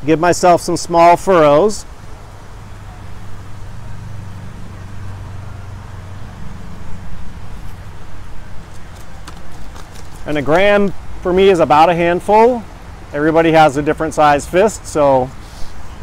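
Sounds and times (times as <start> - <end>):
tines scratching through soil: 8.7 - 10.5.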